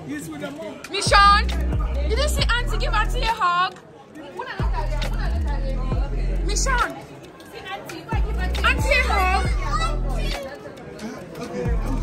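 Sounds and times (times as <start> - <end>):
child's high-pitched voice: 8.5 - 10.6.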